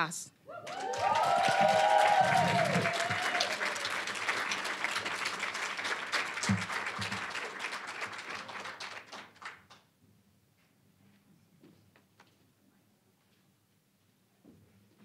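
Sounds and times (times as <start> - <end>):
people whooping: 0.5 - 4.2
audience applauding: 0.5 - 9.8.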